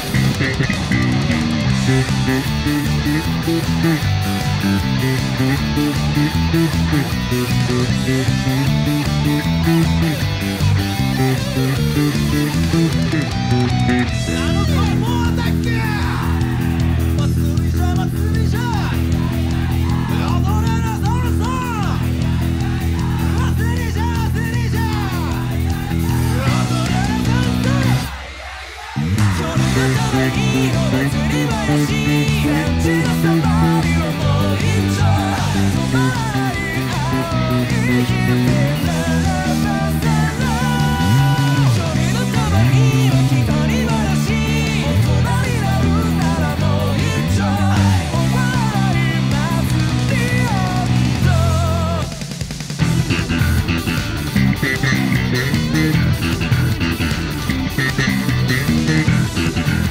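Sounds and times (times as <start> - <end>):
electric bass fingerstyle: 0.0 - 28.2, 29.0 - 59.9
fast rock song: 0.0 - 59.9.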